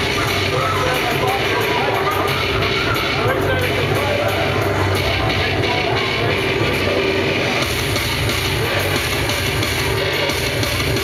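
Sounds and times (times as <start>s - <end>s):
drum and bass music: 0.0s - 11.0s.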